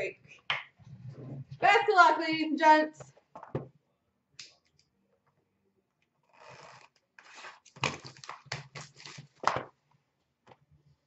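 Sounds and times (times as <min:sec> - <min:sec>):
shrink wrap tearing: 0:07.2 - 0:09.6
plastic shrink wrap crinkling: 0:07.2 - 0:09.7.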